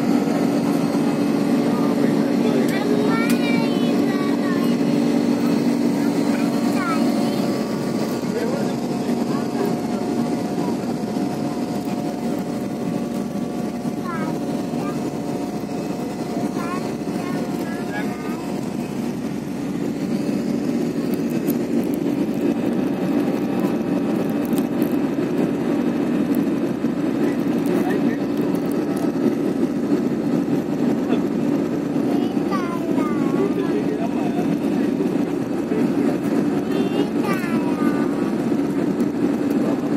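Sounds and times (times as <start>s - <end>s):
airliner cabin engine hum: 0.0s - 39.9s.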